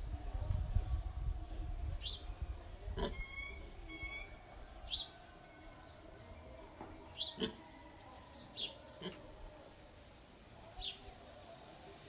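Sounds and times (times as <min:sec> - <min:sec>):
birds chirping: 0:02.0 - 0:09.7.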